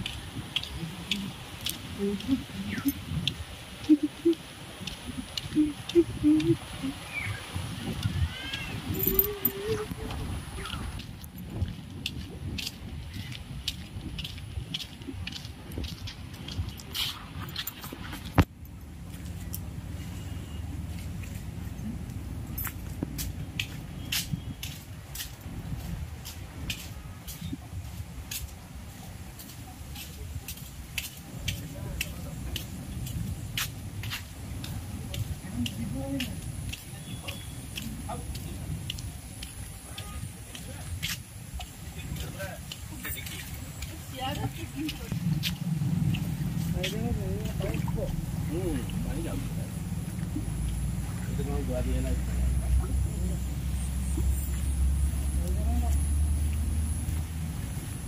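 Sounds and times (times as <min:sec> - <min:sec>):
faint voices: 0:00.0 - 0:11.1
footsteps in flip-flops: 0:00.0 - 0:19.8, 0:20.8 - 0:53.0
low wind rumble: 0:00.0 - 0:58.0.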